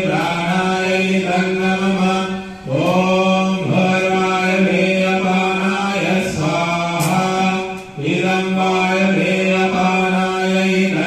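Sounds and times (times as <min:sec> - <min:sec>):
man chanting in monotone: 0:00.0 - 0:11.0.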